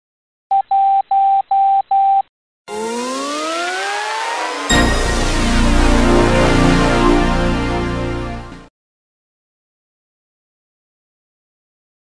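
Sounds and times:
synthesized riser: 2.7 - 8.7.

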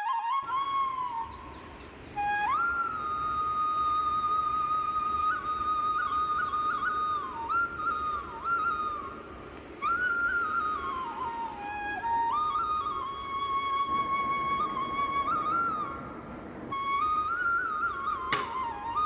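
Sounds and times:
solo flute melody: 0.0 - 19.0.

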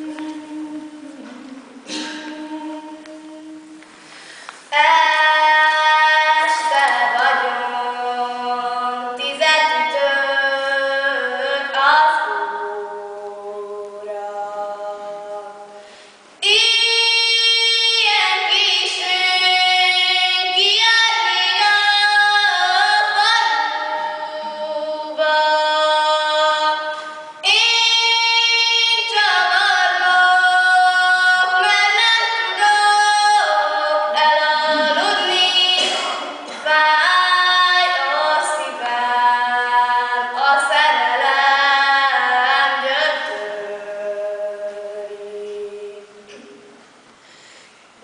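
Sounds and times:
girl singing unaccompanied: 0.0 - 46.6
singer breathing: 4.0 - 4.7, 15.8 - 16.3, 47.2 - 47.9.

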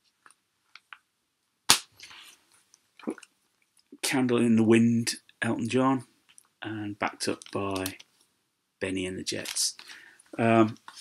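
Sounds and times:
vinyl record sleeve snap: 1.7 - 2.0
faint rustle of record sleeve: 6.2 - 8.4, 9.1 - 11.0.

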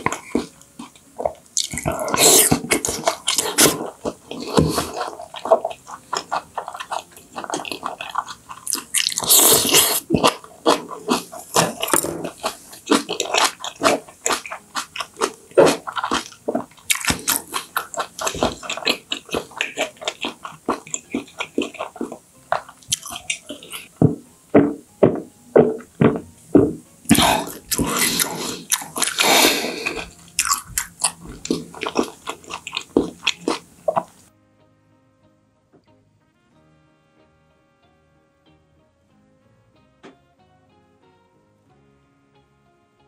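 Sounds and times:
person chewing food: 0.0 - 34.3.

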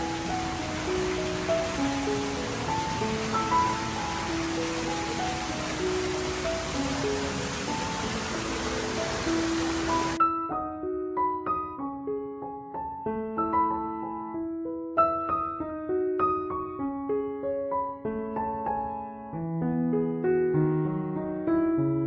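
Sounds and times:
fountain jets splashing: 0.0 - 10.2
slow piano music: 0.0 - 22.0.

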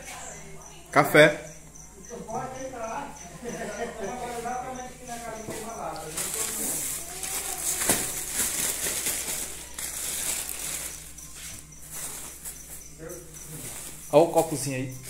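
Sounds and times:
plastic bag rustling: 5.2 - 12.8, 13.5 - 14.0.

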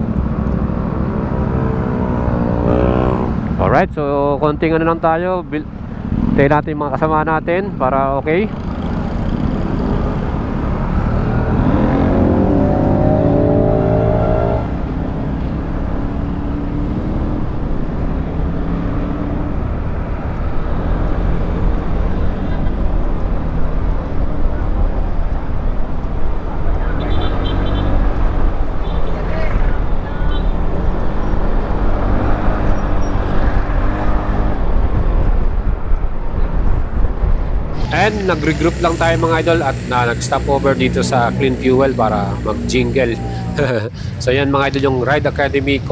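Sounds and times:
wind rumble on microphone: 30.8 - 38.0.

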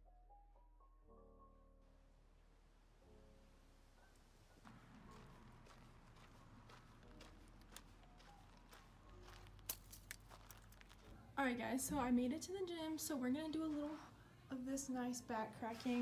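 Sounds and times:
soft background music: 0.0 - 16.0
footsteps on paved path: 4.7 - 11.2, 13.5 - 14.1.

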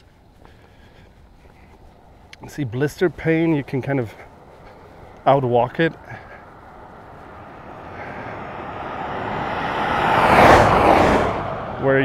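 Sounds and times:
car passing on asphalt road: 0.0 - 12.0.

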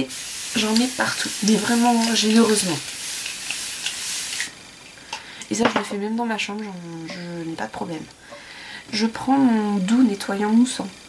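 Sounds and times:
aerosol spray hiss: 0.0 - 4.6.

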